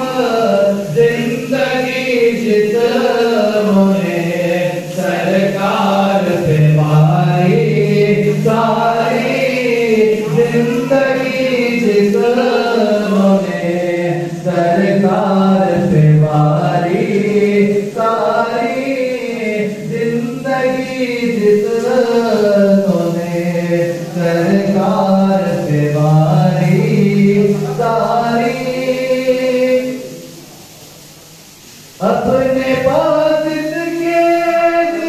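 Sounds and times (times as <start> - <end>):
men chanting devotional verse: 0.0 - 30.8, 31.7 - 35.0.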